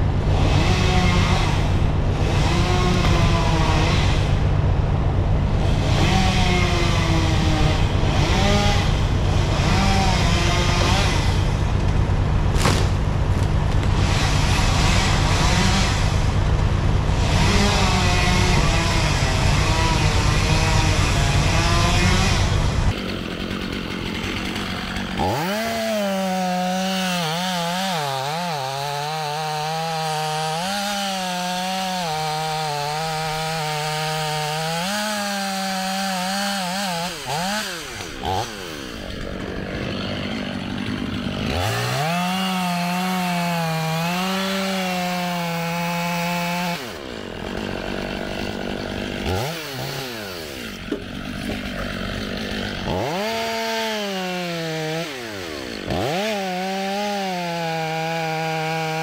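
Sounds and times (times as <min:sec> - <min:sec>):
chainsaw revving through wood: 0:00.0 - 0:59.0.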